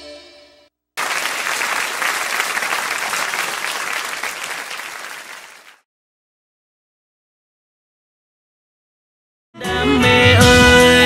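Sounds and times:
audience applause: 1.0s - 5.8s.

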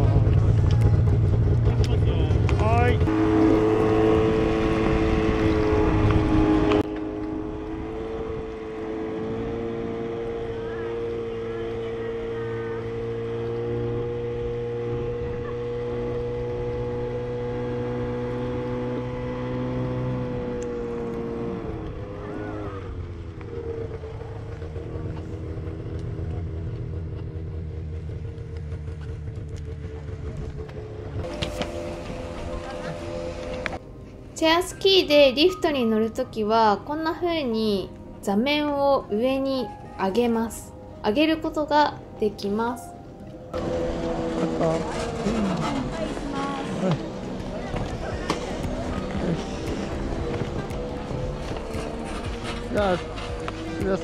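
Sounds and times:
snowmobile engine running: 0.0s - 33.9s, 43.5s - 54.0s.

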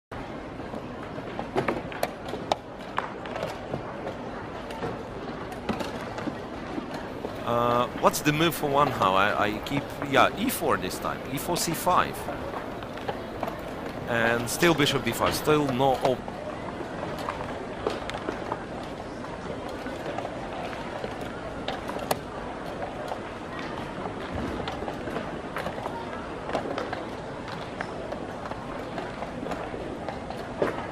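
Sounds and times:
murmur of background noise: 0.1s - 30.9s
distant voices: 7.1s - 17.6s.

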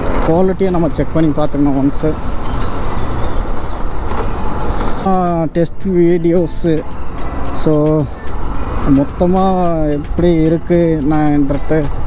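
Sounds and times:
wind and road noise rushing: 0.0s - 12.0s.

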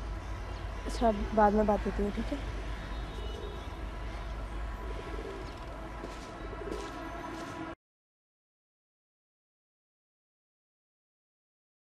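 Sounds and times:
pigeons cooing: 3.1s - 3.8s, 4.8s - 5.7s, 6.4s - 7.0s.

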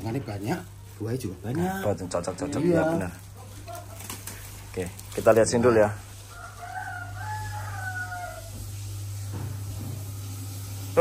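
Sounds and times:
rooster crowing: 6.0s - 9.0s.

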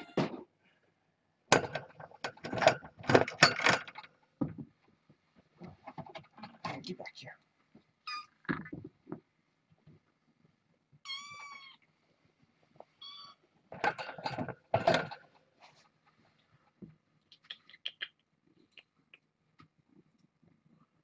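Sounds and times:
kitten meowing: 11.0s - 11.8s, 13.0s - 13.4s.

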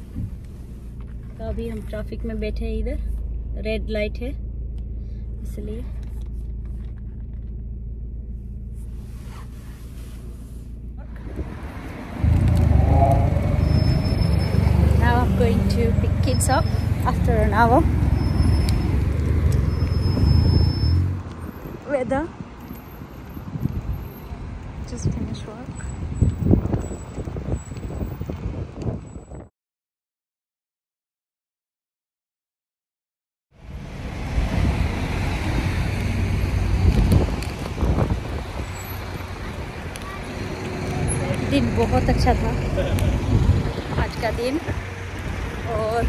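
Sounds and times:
road traffic rumble: 0.0s - 29.5s, 33.6s - 46.0s.

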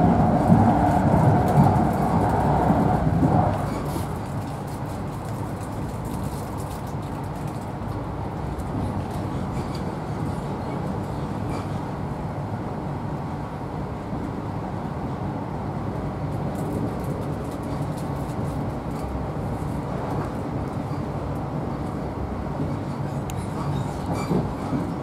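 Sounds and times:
train wheels rumbling on rails: 0.0s - 25.0s.

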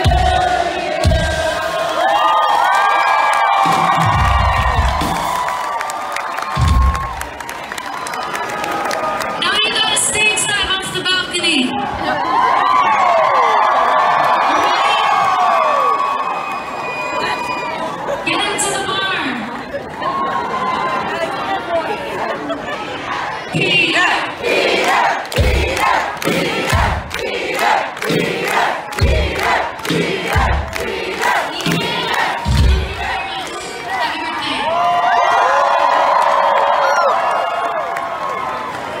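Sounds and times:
crowd cheering and shouting: 0.0s - 39.0s
sharp claps: 24.8s - 33.6s
heavy low thuds: 32.5s - 33.2s.

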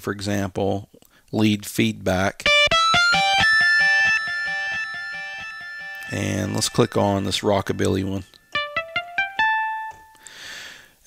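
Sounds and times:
distorted electric guitar notes: 2.4s - 10.0s.

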